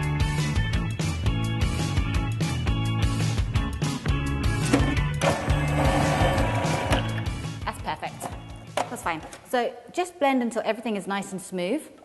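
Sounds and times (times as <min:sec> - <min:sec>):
background music with steady beat: 0:00.0 - 0:09.5.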